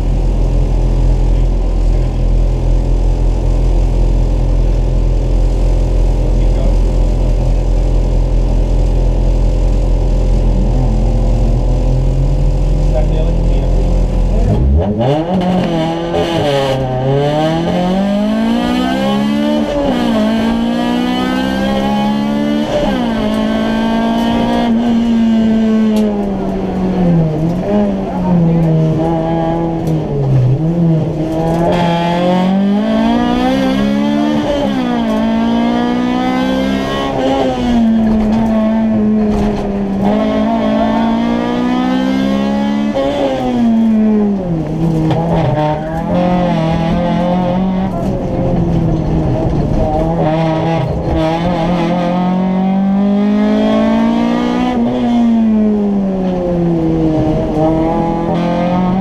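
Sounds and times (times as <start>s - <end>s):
rally car engine revving: 0.0s - 59.0s.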